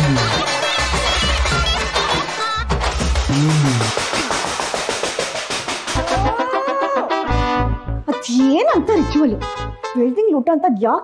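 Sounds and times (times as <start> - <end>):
fast roll of percussive strikes: 0.1 - 6.4.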